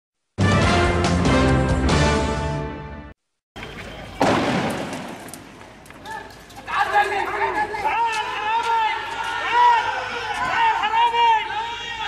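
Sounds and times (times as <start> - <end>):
loud bang: 4.2 - 5.5
people shouting: 6.0 - 12.0.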